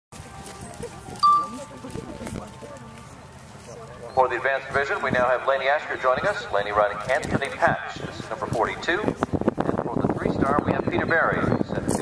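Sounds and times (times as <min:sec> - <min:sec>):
murmured voices: 0:00.3 - 0:11.8
bright ringing tone: 0:01.2 - 0:01.8.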